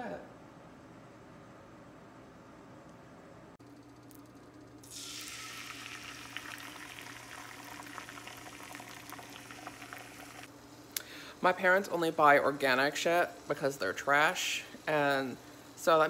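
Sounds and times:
eggs sizzling with small pops: 4.8s - 10.5s
eggs poured into pan: 4.9s - 10.5s.

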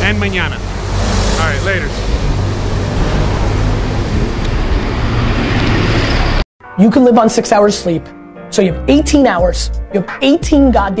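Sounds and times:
bus engine rumbling: 0.0s - 6.4s
street traffic: 0.0s - 6.5s.

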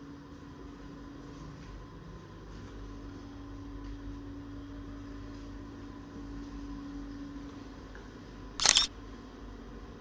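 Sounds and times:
camera shutter click: 8.6s - 8.9s.

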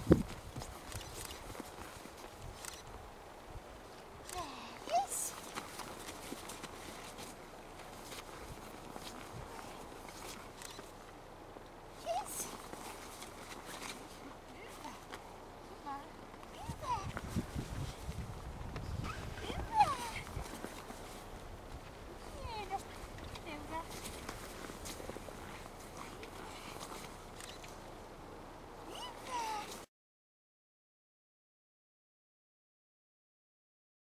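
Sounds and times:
footsteps crunching on snow: 4.9s - 28.2s
puppy whining: 19.0s - 20.3s.

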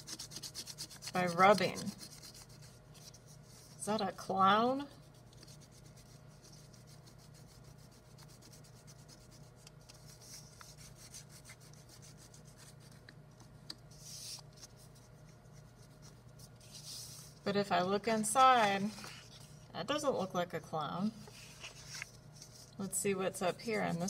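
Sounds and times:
crayon rubbing on paper: 0.0s - 2.8s.

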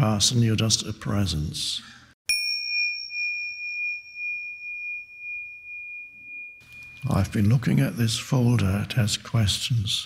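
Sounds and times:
high bell-like chime: 2.3s - 8.2s.

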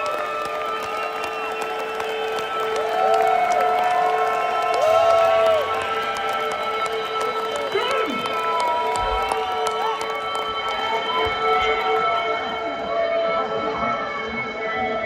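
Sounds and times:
crowd cheering and clapping: 0.0s - 13.8s.

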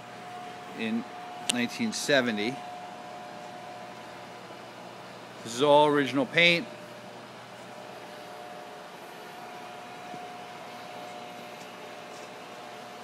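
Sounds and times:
machine shop hum: 0.0s - 13.0s.

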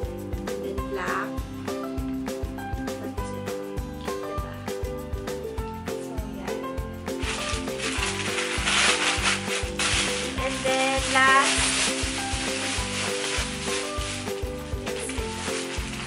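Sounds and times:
background music with steady beat: 0.0s - 16.0s
plastic bag crinkling: 7.2s - 16.0s.

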